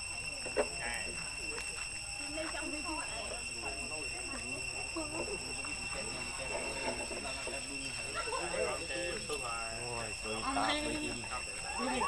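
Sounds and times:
high-pitched whine: 0:00.0 - 0:12.0
people talking faintly: 0:00.0 - 0:12.0.

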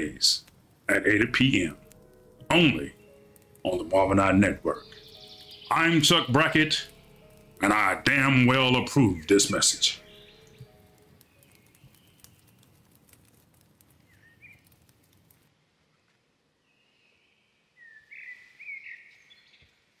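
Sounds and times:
faint outdoor ambience: 0:00.0 - 0:20.0
bird chirps: 0:02.4 - 0:12.7, 0:14.0 - 0:14.8, 0:16.6 - 0:19.8.

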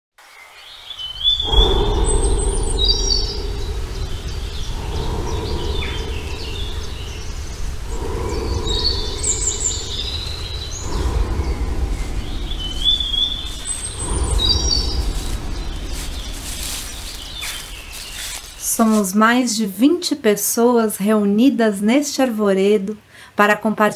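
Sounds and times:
birds chirping: 0:00.3 - 0:22.0
low outdoor rumble: 0:01.0 - 0:22.2.

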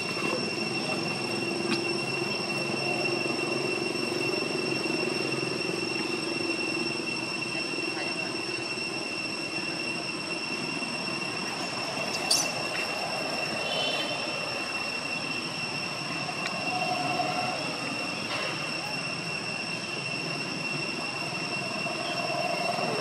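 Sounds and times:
high-pitched whine: 0:00.0 - 0:23.0
outdoor background noise: 0:00.0 - 0:23.0.

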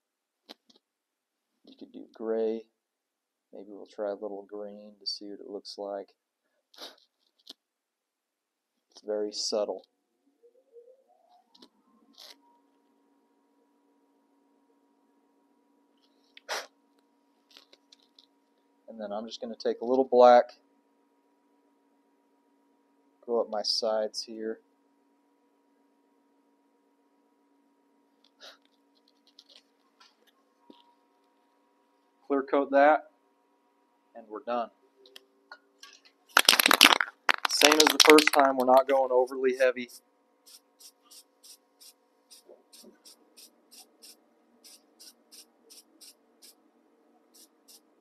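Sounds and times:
brief hiss: 0:16.4 - 0:16.7
aerosol can mixing ball rattling: 0:36.3 - 0:39.1.

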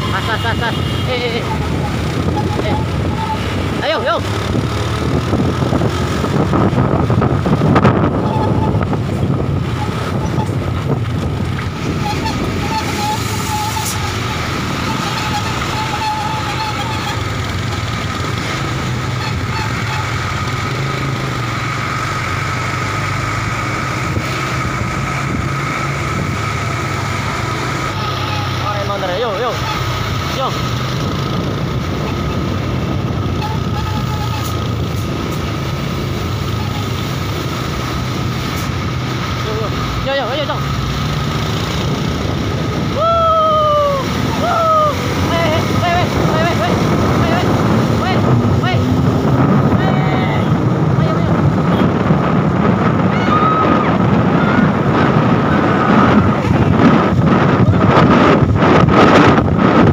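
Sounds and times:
indistinct voices: 0:00.0 - 0:04.5, 0:42.8 - 0:51.8
road traffic: 0:00.0 - 0:59.9
vehicle engine noise: 0:00.0 - 0:59.9.

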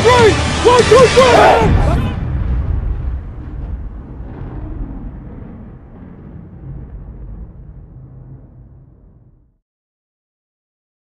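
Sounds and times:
deep cinematic boom: 0:00.0 - 0:09.6.

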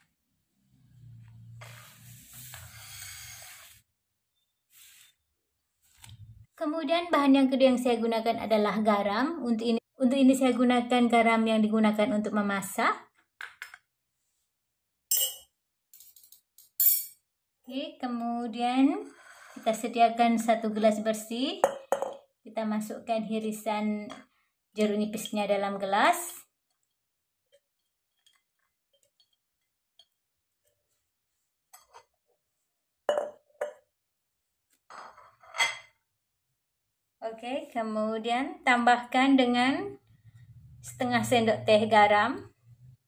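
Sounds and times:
metal spoon clinking glass bowl: 0:15.1 - 0:17.2, 0:21.6 - 0:22.2.

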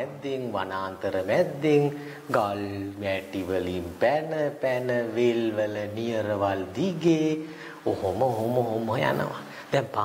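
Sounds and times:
man telling a story animatedly: 0:05.8 - 0:10.0.

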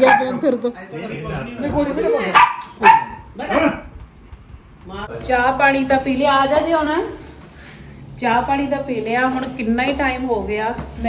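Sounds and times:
dog barking: 0:00.0 - 0:00.4, 0:02.3 - 0:03.3.

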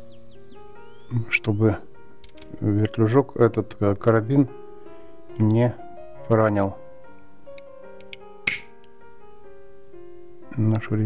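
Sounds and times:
soft piano music: 0:00.0 - 0:11.0
lighter striking: 0:07.6 - 0:08.9.

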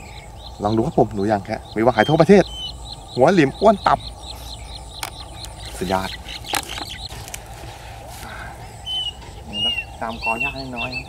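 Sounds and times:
bird chirping: 0:00.0 - 0:11.0
sharp clicks: 0:04.9 - 0:07.5.

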